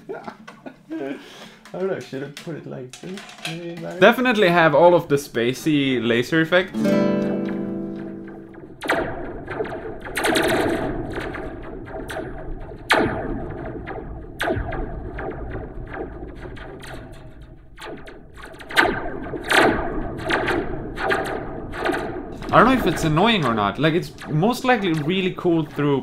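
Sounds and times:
guitar plucks with spring reverb: 6.7 - 9.2.

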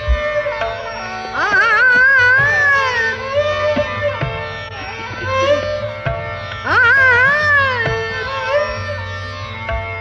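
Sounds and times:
tabla strokes: 0.0 - 10.0
woman singing wavering note: 6.7 - 8.7.

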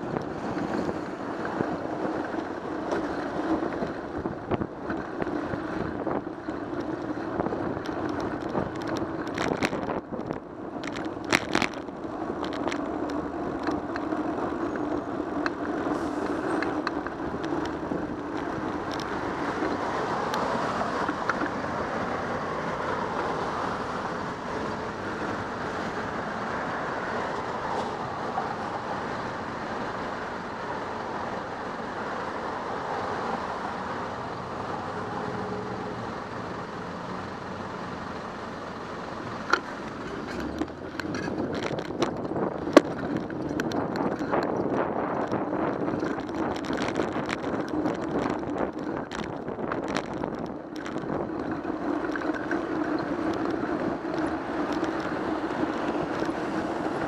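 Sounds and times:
city traffic noise: 0.0 - 57.0.

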